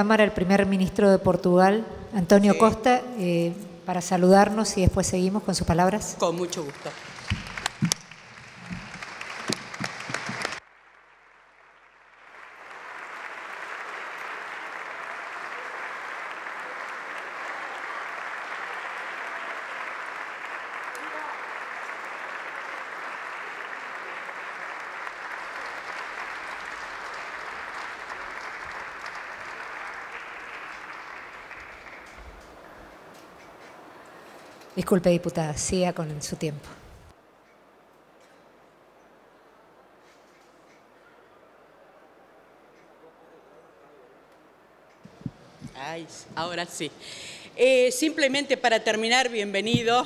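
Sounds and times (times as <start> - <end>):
crowd applause: 6.2 - 34.6.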